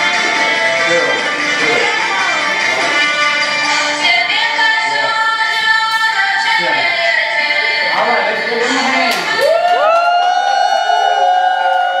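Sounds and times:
children cheering and shouting: 0:09.4 - 0:12.0.

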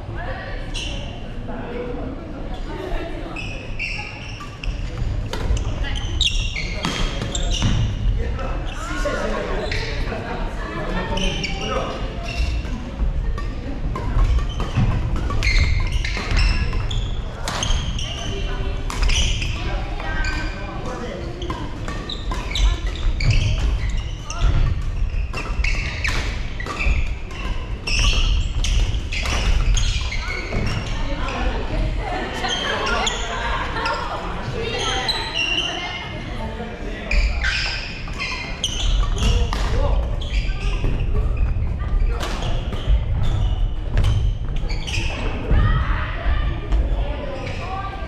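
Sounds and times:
people talking: 0:30.1 - 0:37.7.

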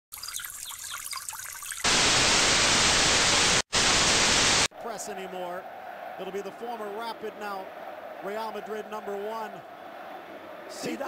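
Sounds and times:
television static: 0:01.9 - 0:04.7.

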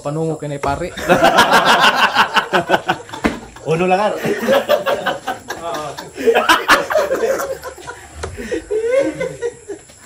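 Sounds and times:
man laughing: 0:00.9 - 0:09.9
casual talk: 0:03.6 - 0:06.4.

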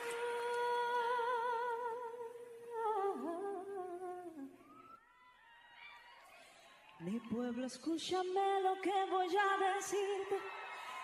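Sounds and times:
person singing with vibrato: 0:00.0 - 0:04.7.

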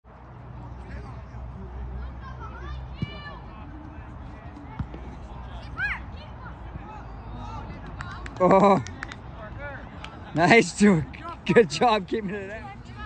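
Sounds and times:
distant shouts and calls: 0:01.6 - 0:10.0.

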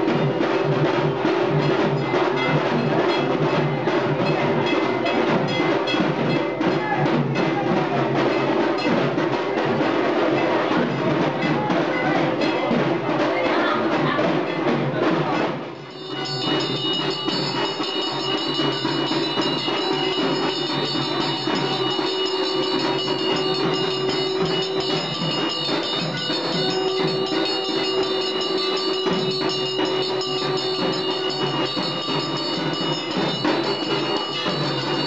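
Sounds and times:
clanging metal percussion: 0:00.0 - 0:35.0
fast drumming: 0:00.0 - 0:35.0.

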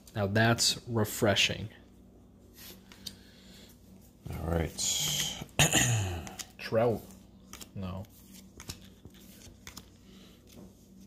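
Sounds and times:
cards being flipped by hand: 0:06.2 - 0:11.0.

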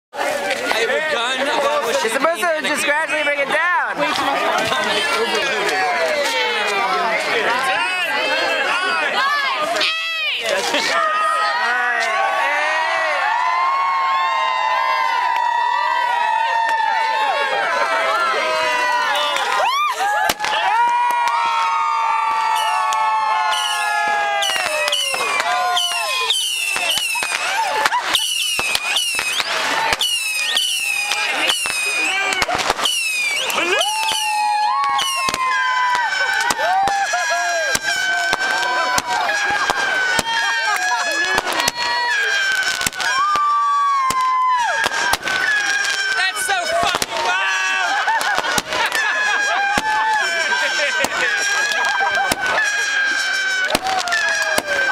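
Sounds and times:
crowd shouting and cheering: 0:00.1 - 0:54.9
fireworks bangs and crackles: 0:00.2 - 0:54.9.

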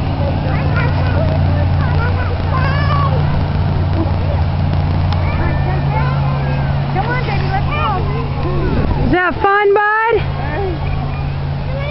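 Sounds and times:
large vehicle engine idling: 0:00.0 - 0:11.9
people chattering: 0:00.0 - 0:11.9.

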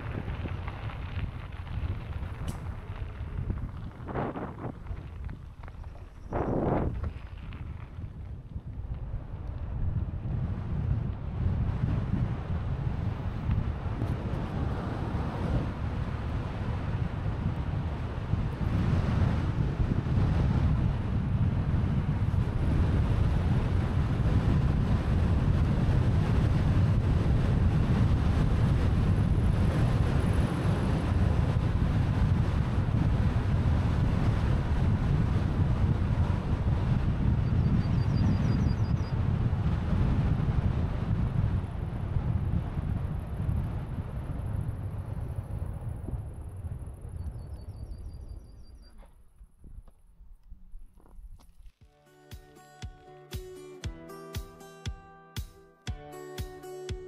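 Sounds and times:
wind rushing over microphone: 0:00.0 - 0:51.4.

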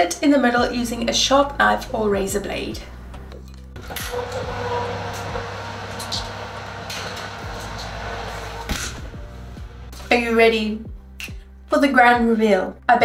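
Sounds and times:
quiet background music: 0:00.0 - 0:13.0
steady rushing noise: 0:03.9 - 0:10.0.

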